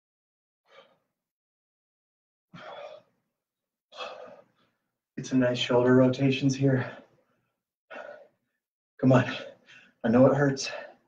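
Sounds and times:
man breathing heavily: 0.7 - 1.1, 2.6 - 3.2, 3.9 - 4.8, 6.8 - 8.6, 9.2 - 10.0, 10.6 - 11.0.

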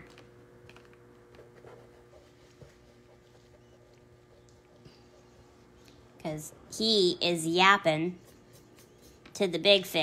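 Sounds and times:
eraser rubbing on paper: 1.4 - 5.8.

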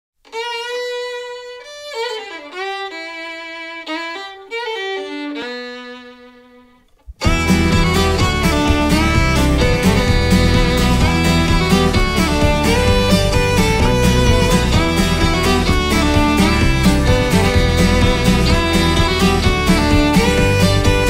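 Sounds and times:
fiddle playing slow melody: 0.2 - 21.0
band playing with steady beat: 7.2 - 21.0.

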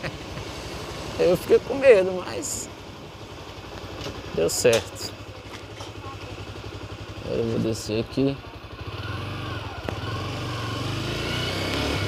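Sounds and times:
motorcycle engine at low revs: 0.0 - 12.0.

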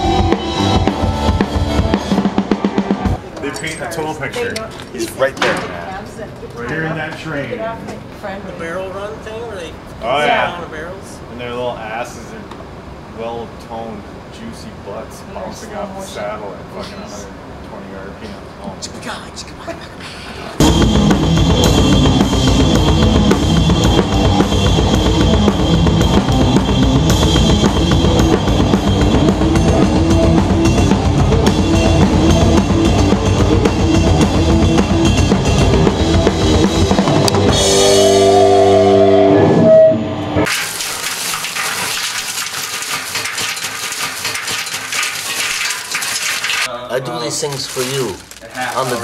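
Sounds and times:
drum kit played fast: 0.0 - 3.2, 20.6 - 38.2.

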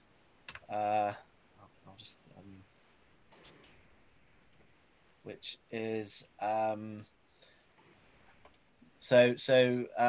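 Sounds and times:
soft clicks: 0.4 - 0.8, 3.3 - 4.8, 7.3 - 8.7.

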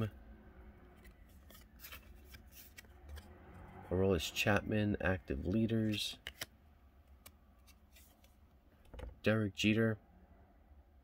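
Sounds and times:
cards sliding against cards: 0.9 - 3.3, 5.4 - 8.4.

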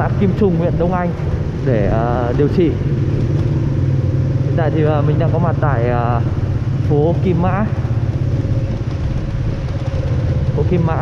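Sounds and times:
motorbike engine running: 0.0 - 11.0
motorbike traffic: 0.0 - 11.0.

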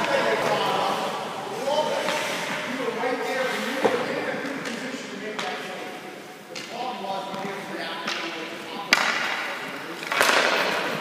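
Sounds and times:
indistinct echoing voices: 0.0 - 11.0.

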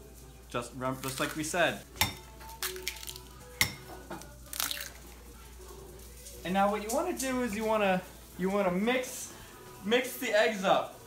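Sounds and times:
eggshell crackling: 0.6 - 9.1.

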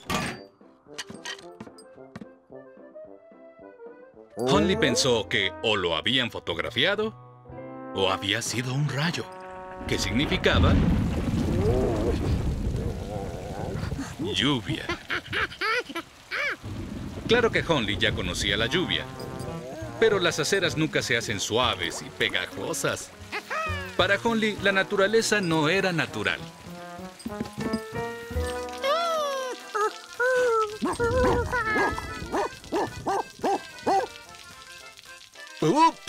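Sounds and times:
background music: 0.0 - 11.0, 18.3 - 36.0
light rain hiss: 9.3 - 36.0
cartoon dog barking: 30.6 - 34.2.

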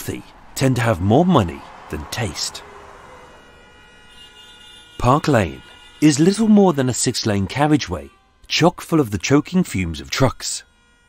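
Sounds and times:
city traffic hum: 0.0 - 11.0.

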